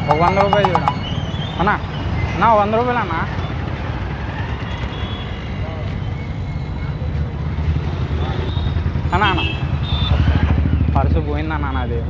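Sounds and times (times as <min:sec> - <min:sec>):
motorcycle engines rumbling: 0:00.0 - 0:12.0.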